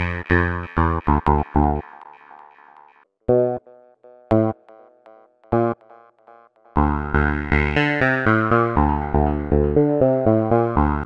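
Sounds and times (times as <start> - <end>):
synth bass note with delay echoes: 6.8 - 11.0.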